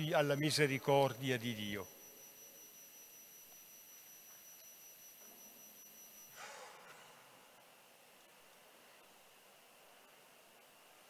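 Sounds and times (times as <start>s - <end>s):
faint high-pitched whine: 0.0s - 11.0s.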